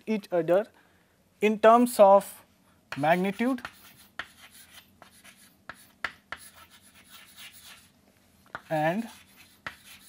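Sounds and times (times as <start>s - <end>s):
chalk scratching on chalkboard: 2.9s - 7.9s, 8.5s - 10.0s
chalk tapping on chalkboard: 2.9s - 7.9s, 8.5s - 10.0s.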